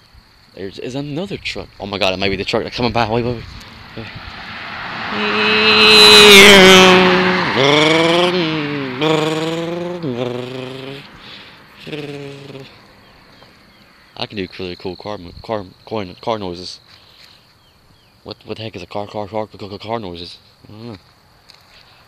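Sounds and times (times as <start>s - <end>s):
truck passing by: 3.1s - 14.0s
boy imitating car engine: 5.0s - 12.8s.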